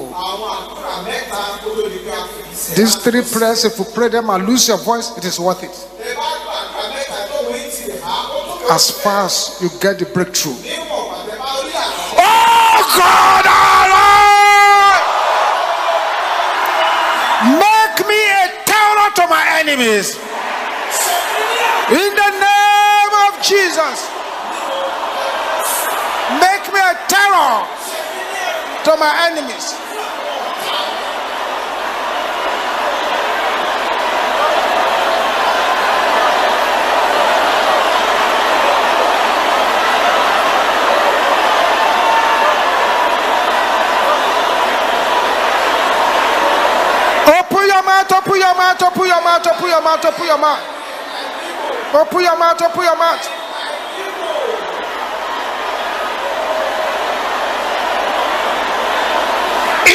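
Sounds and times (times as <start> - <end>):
congregation praying aloud: 0.0 - 55.2, 56.2 - 59.9.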